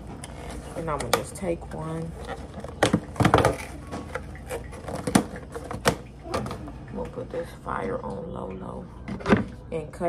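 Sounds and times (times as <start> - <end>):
plastic container crackling: 0.0 - 7.0.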